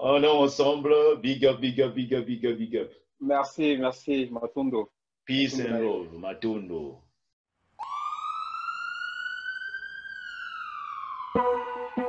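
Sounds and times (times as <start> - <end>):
siren-like rising and falling tone: 7.8 - 12.0.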